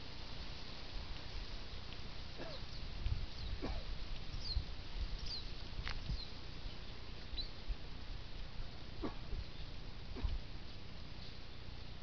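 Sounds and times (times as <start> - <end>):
steady hiss: 0.0 - 12.0
thin high bird calls: 2.3 - 7.6.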